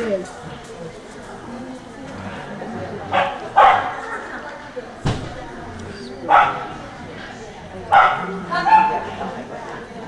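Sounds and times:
dog barking: 3.1s - 4.0s, 6.3s - 6.7s, 7.9s - 9.1s.

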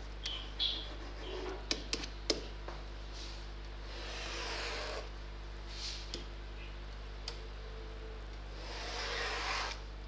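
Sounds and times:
electrical hum: 0.0s - 10.0s
stylus scratching on tablet: 0.8s - 1.6s, 3.9s - 5.1s, 8.6s - 9.8s.

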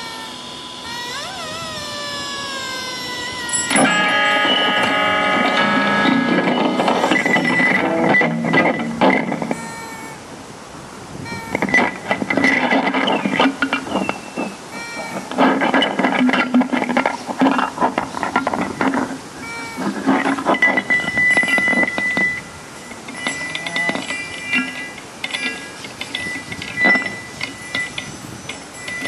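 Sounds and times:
electric guitar scraped and plucked: 0.0s - 10.2s, 11.2s - 29.0s
high thin guitar tone: 0.0s - 10.3s, 11.2s - 29.0s.

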